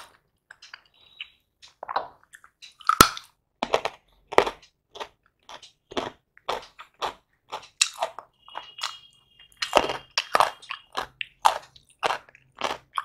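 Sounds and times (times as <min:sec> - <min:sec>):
crunchy chewing of carrot: 0:02.3 - 0:13.0.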